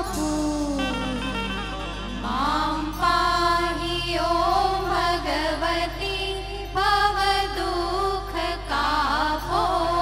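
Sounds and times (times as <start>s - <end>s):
women singing into microphones: 0.0s - 1.2s, 2.2s - 10.0s
sustained organ accompaniment: 0.8s - 5.8s.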